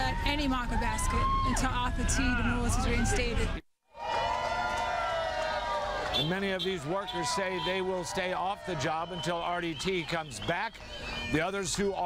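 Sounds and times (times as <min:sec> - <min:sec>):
horn blast: 0:06.0 - 0:11.5.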